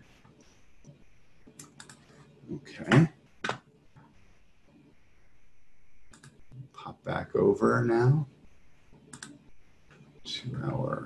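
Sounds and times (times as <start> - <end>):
computer clicks: 0.8 - 2.1, 6.0 - 6.7, 8.9 - 10.1.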